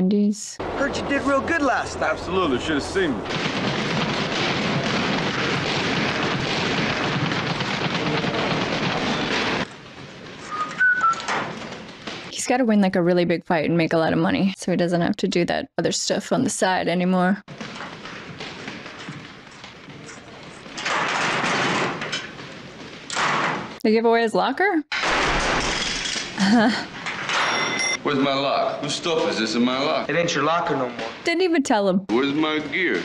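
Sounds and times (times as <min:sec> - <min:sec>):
clatter of punches and knocks: 0:03.3 - 0:10.4, 0:11.2 - 0:12.4, 0:17.5 - 0:23.8, 0:24.9 - 0:26.4
brief squeak: 0:10.5 - 0:11.3
metal locker rattling: 0:20.8 - 0:22.4.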